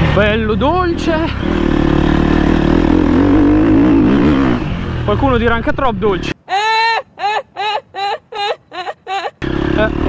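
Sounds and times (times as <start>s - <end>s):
motocross bike engine: 0.0s - 6.4s, 9.4s - 10.0s.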